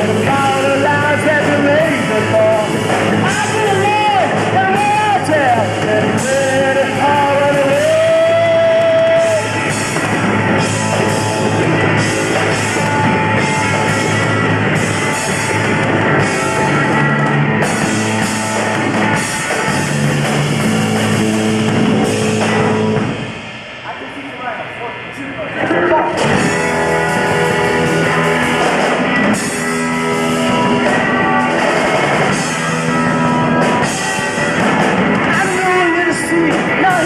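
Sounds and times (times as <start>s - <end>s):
man singing: 0.0s - 9.6s, 35.3s - 37.0s
drums: 0.0s - 37.0s
electric guitar: 0.0s - 37.0s
rock band playing: 0.0s - 37.0s.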